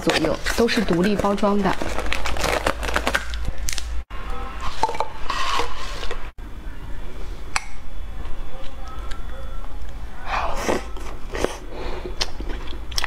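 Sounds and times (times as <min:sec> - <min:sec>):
plastic wrappers crinkling: 0:00.0 - 0:03.9.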